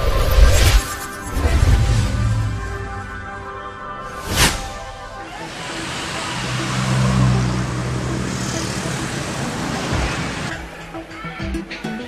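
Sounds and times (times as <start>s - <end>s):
car driving past: 4.4s - 10.5s.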